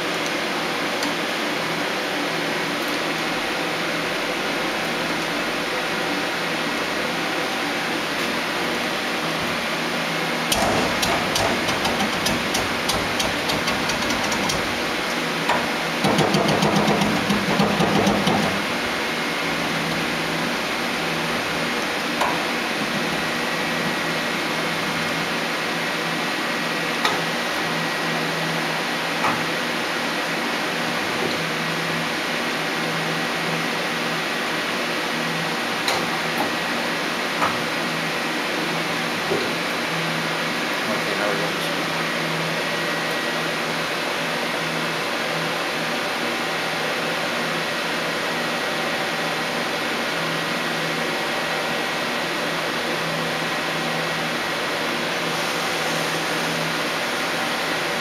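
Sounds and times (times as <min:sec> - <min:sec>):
machine humming: 0:03.4 - 0:29.2
rapid mechanical clicking: 0:10.5 - 0:14.9.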